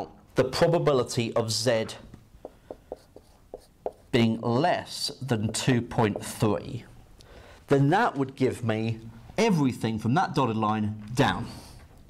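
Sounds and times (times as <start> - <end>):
marker writing on whiteboard: 2.4 - 6.6.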